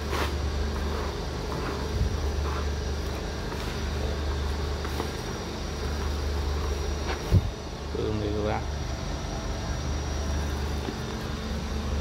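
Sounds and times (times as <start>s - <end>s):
high-pitched whine: 0.0s - 12.0s.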